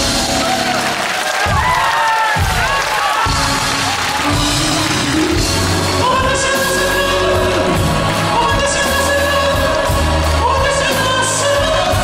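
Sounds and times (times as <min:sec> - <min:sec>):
audience cheering: 0:00.0 - 0:12.0
live pop concert music: 0:00.0 - 0:12.0
bass drum beat: 0:01.4 - 0:12.0.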